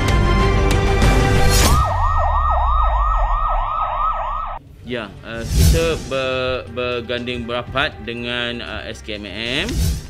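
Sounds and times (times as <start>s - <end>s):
music: 0.0s - 2.2s, 4.6s - 10.0s
emergency siren yelping: 1.5s - 4.6s
low rumble: 1.6s - 4.8s.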